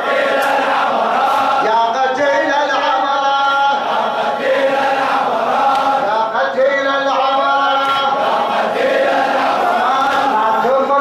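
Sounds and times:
crowd of men chanting in unison: 0:00.0 - 0:11.0.

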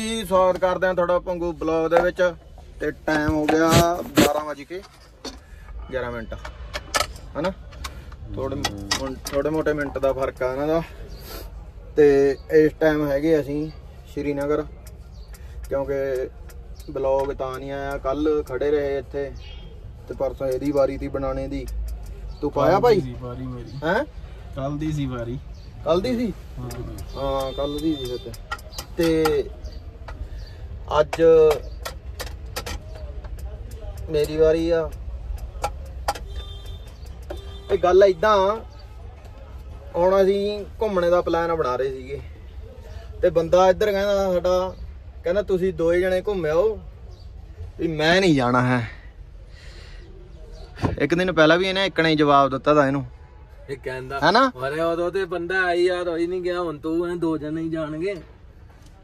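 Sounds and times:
sharp clicks: 0:14.1 - 0:19.1, 0:20.1 - 0:23.2, 0:25.9 - 0:39.4.

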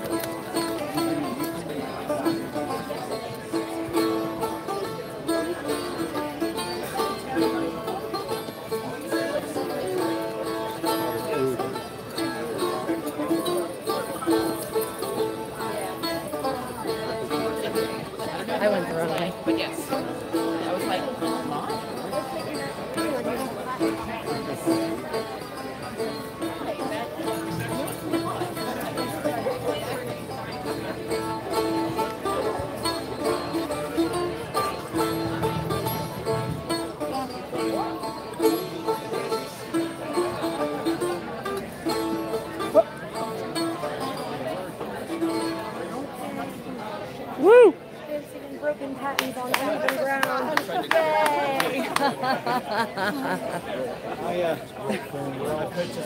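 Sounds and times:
plucked string instrument tune: 0:00.0 - 0:47.4
crowd talking: 0:00.0 - 0:56.0.

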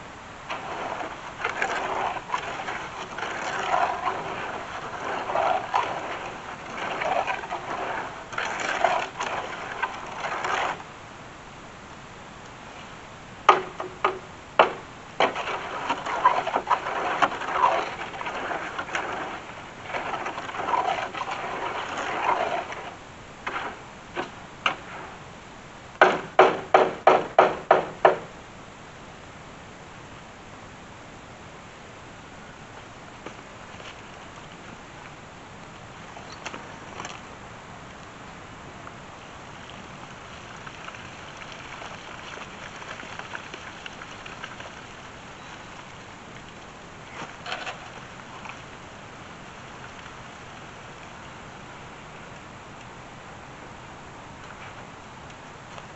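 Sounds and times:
steady hiss: 0:00.0 - 0:55.9
digging tool scraping soil: 0:00.5 - 0:10.8, 0:15.2 - 0:23.8.

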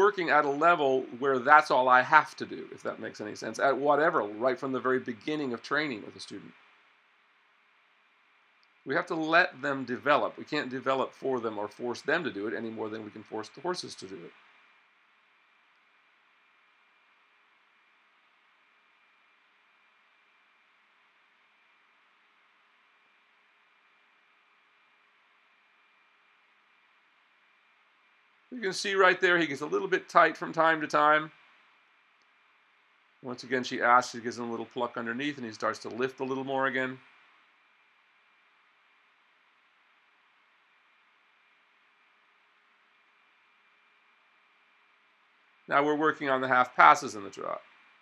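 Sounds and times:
faint steady hiss: 0:00.0 - 0:48.0
faint steady tone: 0:00.0 - 0:48.0
thin steady hum: 0:00.0 - 0:48.0.

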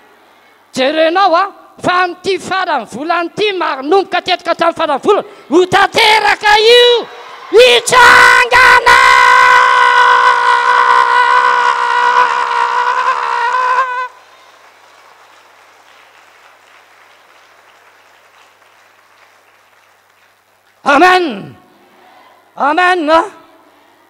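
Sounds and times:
man shouting high-pitched: 0:00.8 - 0:14.1, 0:20.9 - 0:21.6.

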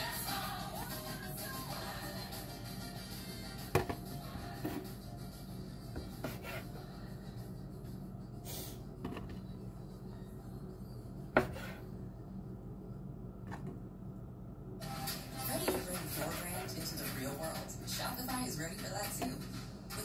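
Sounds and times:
faint background music: 0:00.0 - 0:20.0
knife cutting on plastic board: 0:06.0 - 0:06.7, 0:11.4 - 0:11.8.

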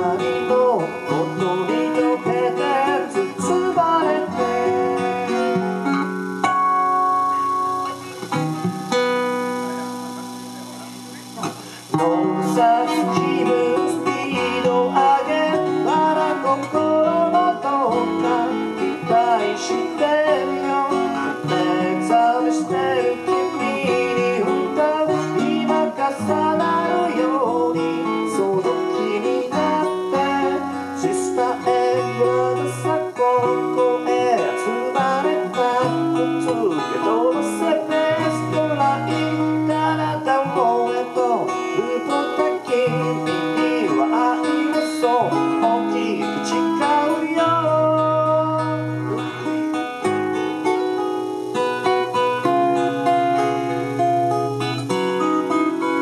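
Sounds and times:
acoustic guitar playing: 0:00.0 - 0:56.0
plucked string instrument: 0:00.0 - 0:56.0.

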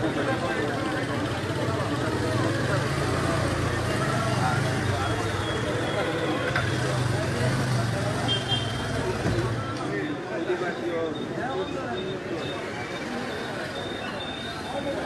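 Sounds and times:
street crowd voices: 0:00.0 - 0:15.0.

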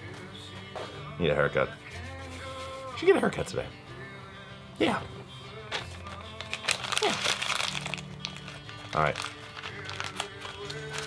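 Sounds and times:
background music: 0:00.0 - 0:11.0
paper crinkling and crunching: 0:05.7 - 0:11.0.

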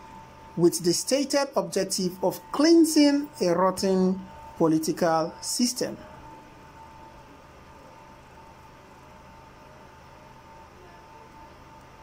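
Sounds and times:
background hiss and low hum: 0:00.0 - 0:12.0.

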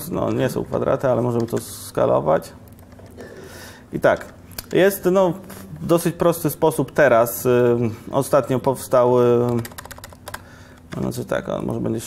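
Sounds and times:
keyboard keystrokes: 0:09.4 - 0:11.1.

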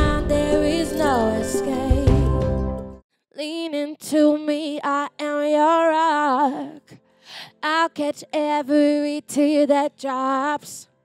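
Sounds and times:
woman singing with vibrato: 0:00.0 - 0:02.5, 0:03.4 - 0:07.0.

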